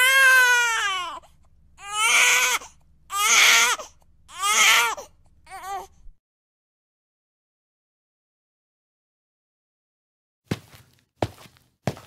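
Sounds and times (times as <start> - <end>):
child crying: 0.0 - 1.2.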